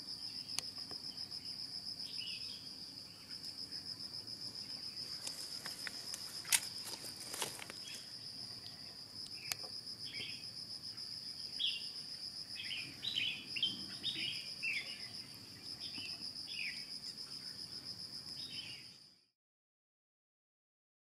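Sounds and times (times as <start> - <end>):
insect trill: 0.0 - 19.3
bird chirps: 12.6 - 16.9.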